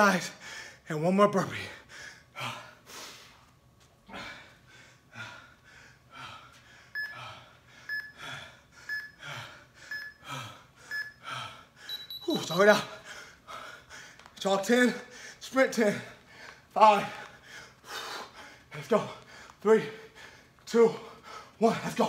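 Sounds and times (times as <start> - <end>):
man breathing hard: 0.3 - 0.9, 1.7 - 3.4, 4.0 - 12.1, 12.9 - 14.3, 14.9 - 21.6
interval timer beeps: 6.9 - 9.2, 9.9 - 10.3, 10.9 - 11.2, 11.8 - 12.9.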